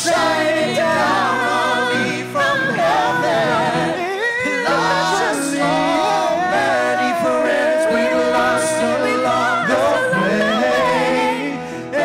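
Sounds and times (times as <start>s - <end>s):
group singing in harmony: 0.0s - 12.0s.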